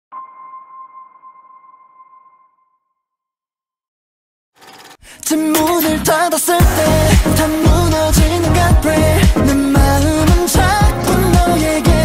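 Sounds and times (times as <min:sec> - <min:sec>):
electronic sonar ping: 0:00.1 - 0:03.2.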